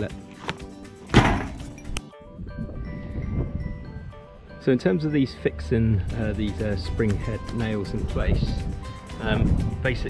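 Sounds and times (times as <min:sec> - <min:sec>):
background music with held notes: 0:00.0 - 0:10.0
loud thump: 0:01.1 - 0:01.6.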